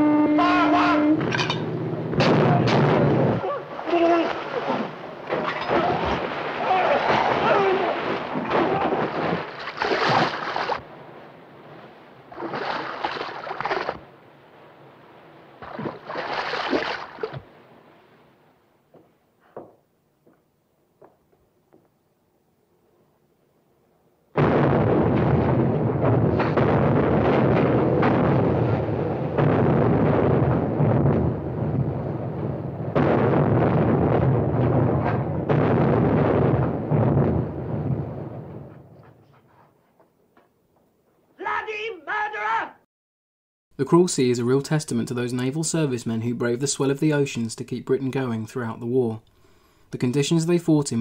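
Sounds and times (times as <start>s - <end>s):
dense rumble: 0.0s - 16.1s, 24.4s - 39.3s
depth-charge explosions: 1.2s - 3.8s, 24.4s - 39.0s.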